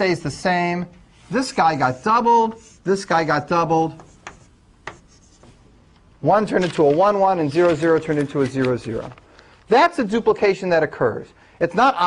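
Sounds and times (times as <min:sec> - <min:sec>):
chalk tapping on blackboard: 0:03.9 - 0:05.6.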